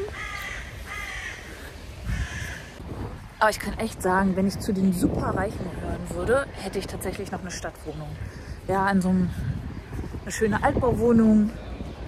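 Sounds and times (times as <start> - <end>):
bird calling: 0.0 - 2.8.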